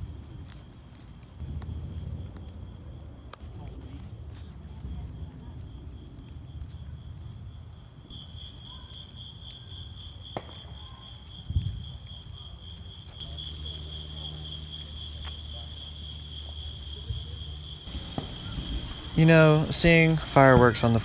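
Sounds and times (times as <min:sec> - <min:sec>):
night insects chorus: 0:00.0 - 0:21.0
low rumble: 0:01.4 - 0:07.6, 0:17.2 - 0:21.0.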